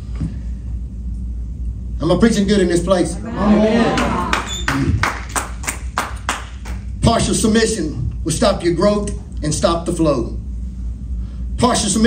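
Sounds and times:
rhythmic hand clapping: 3.9s - 6.9s.

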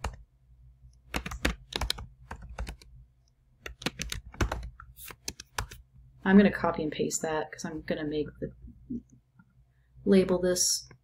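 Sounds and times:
typing on computer keyboard: 0.0s - 0.2s, 1.1s - 2.9s, 3.6s - 5.8s.

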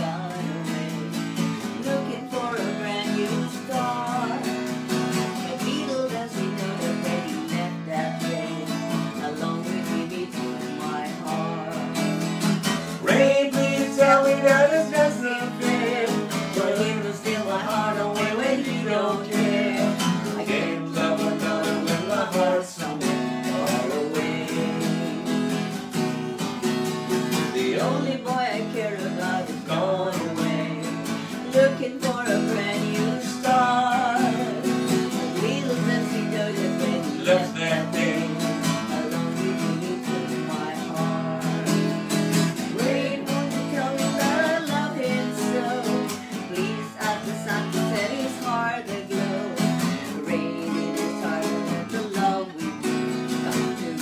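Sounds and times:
person singing: 0.0s - 26.2s, 27.3s - 54.0s
acoustic guitar strumming: 0.0s - 54.0s.

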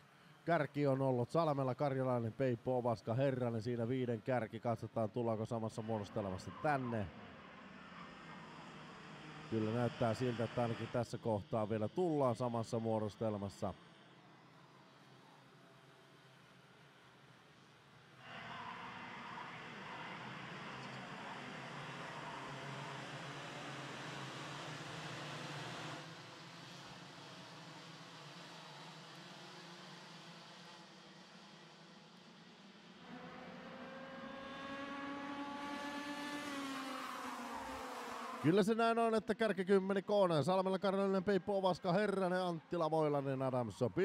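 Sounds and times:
kart engines racing: 18.3s - 30.5s, 32.9s - 39.1s.

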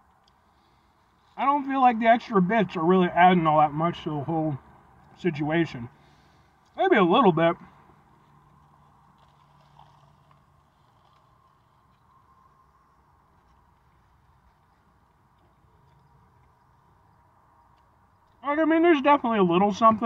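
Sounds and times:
faint low hum: 0.0s - 20.0s.

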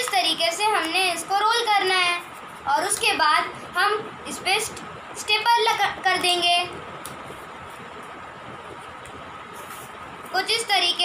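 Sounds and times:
faint high hum: 0.0s - 11.0s.

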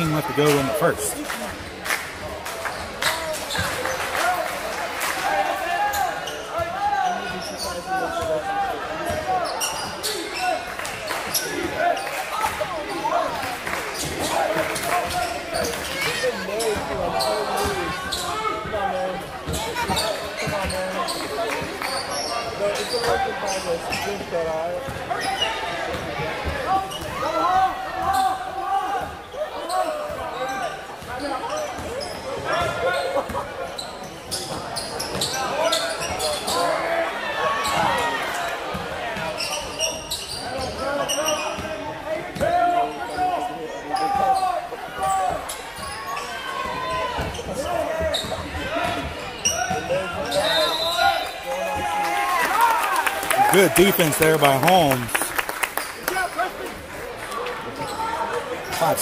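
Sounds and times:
hum of spectators' voices: 0.0s - 59.0s.

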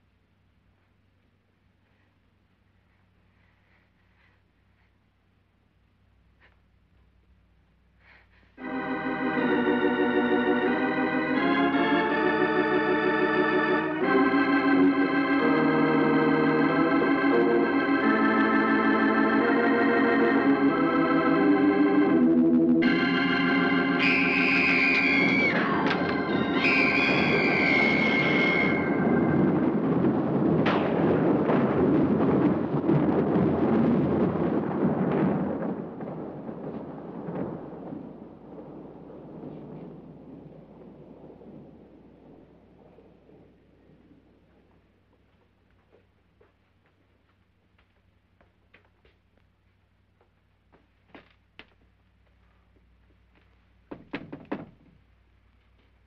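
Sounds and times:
high gliding tones: 8.6s - 29.6s
dense orchestral score: 8.6s - 29.8s
eerie organ chords: 8.6s - 30.3s.

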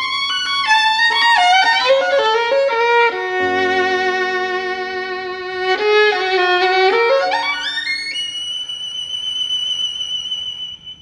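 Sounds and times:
violin playing a fast run: 0.0s - 10.9s.

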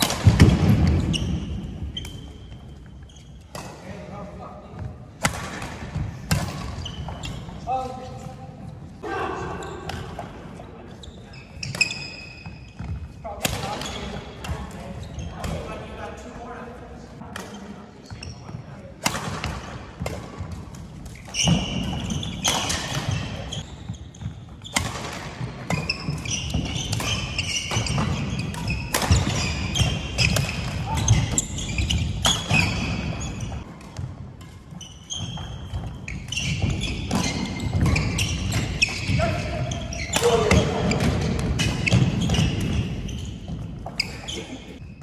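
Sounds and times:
rackets hitting shuttlecock: 0.0s - 2.7s, 4.8s - 7.5s, 19.0s - 44.9s
sneakers squeaking on floor: 0.0s - 45.0s.

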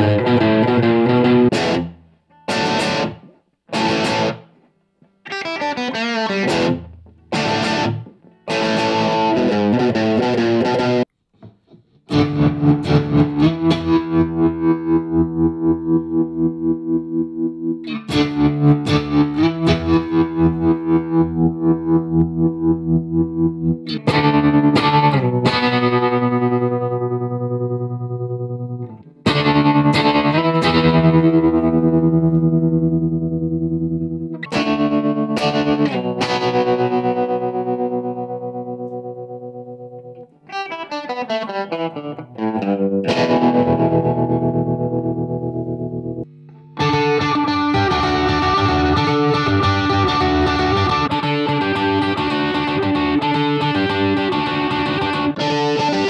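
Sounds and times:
overdriven electric guitar chords: 0.0s - 56.0s.

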